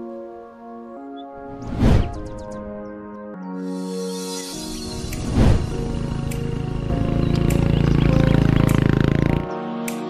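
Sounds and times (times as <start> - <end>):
background music: 0.0 - 10.0
motorcycle engine running: 5.8 - 9.5.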